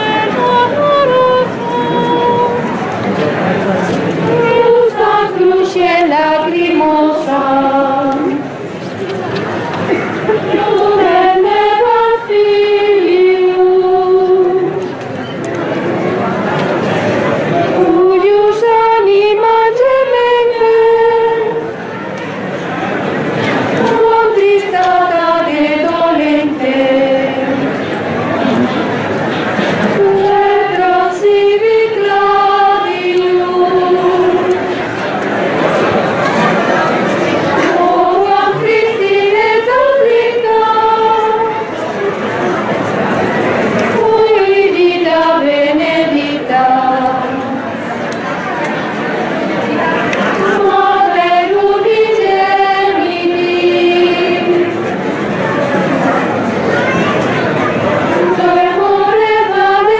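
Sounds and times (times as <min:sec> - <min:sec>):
choir singing held notes: 0:00.0 - 0:59.9.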